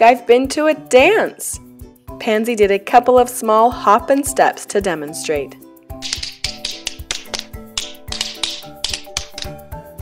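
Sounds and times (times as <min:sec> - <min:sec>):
soft background music: 0:00.0 - 0:10.0
tap shoes on hard floor: 0:06.0 - 0:09.5.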